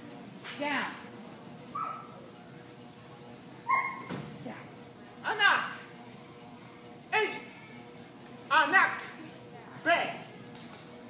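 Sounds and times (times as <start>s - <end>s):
dog yipping: 1.8s - 2.2s, 3.2s - 4.2s.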